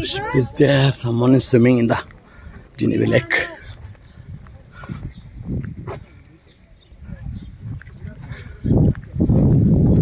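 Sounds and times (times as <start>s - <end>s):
soft footsteps: 0.0s - 10.0s.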